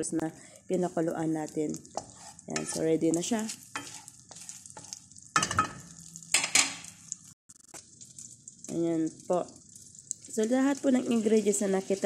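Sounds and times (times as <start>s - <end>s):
butter sizzling in a pan: 0.0s - 12.0s
wooden spatula scraping: 0.8s - 6.0s.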